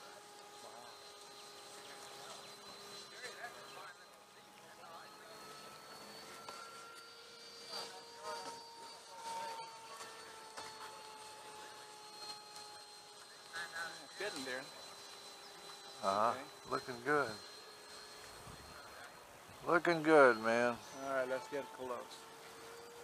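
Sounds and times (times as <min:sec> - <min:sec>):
model jet fan whining: 0:00.0 - 0:23.0.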